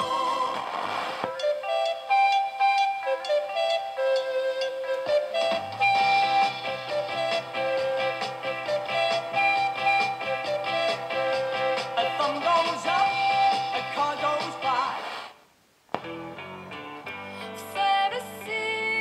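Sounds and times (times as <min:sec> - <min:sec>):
music from radio loudspeaker: 0:00.0 - 0:15.4, 0:16.0 - 0:19.0.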